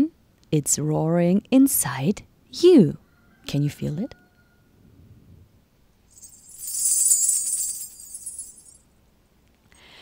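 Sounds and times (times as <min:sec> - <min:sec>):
shaken jingling percussion: 0:06.1 - 0:08.8.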